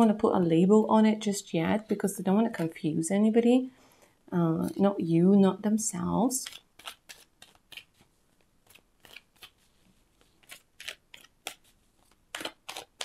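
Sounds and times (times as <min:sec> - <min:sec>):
cards being shuffled: 0:06.4 - 0:13.0.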